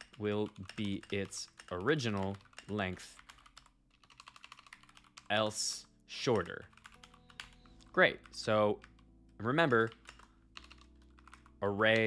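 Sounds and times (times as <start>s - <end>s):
typing on computer keyboard: 0.0s - 5.5s, 6.2s - 12.0s.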